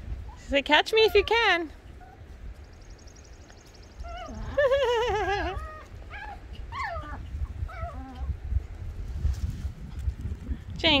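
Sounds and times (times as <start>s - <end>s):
puppies yelping: 4.0s - 8.3s.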